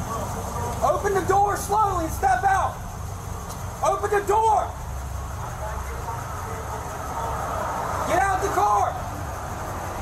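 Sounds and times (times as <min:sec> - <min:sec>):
faint voices: 0:00.0 - 0:09.1
idling vehicles rumbling: 0:00.0 - 0:10.0.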